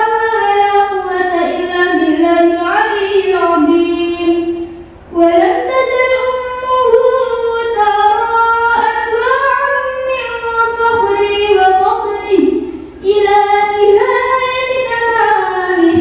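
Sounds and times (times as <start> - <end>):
girl singing into a microphone: 0.0 - 16.0.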